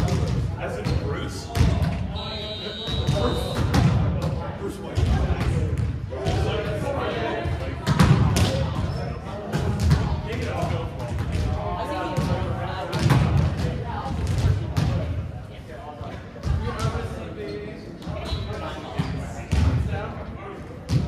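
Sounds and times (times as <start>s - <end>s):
volleyballs bouncing on gym floor: 0.0s - 2.0s, 7.6s - 15.2s, 19.0s - 19.9s.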